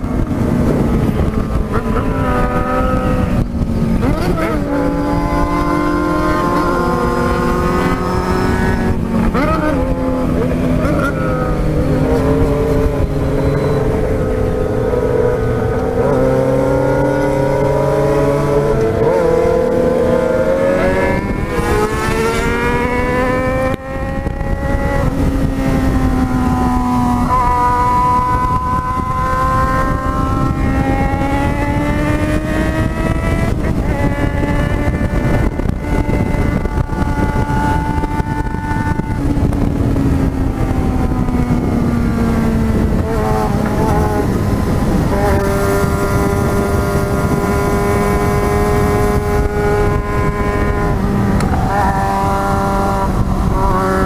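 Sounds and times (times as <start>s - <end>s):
motorcycle engine revving: 0.0s - 54.0s
wind rush: 0.0s - 54.0s.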